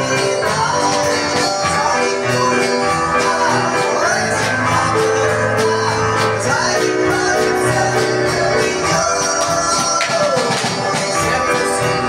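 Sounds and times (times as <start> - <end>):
drum kit beat: 0.0 - 12.0
rock band playing: 0.0 - 12.0.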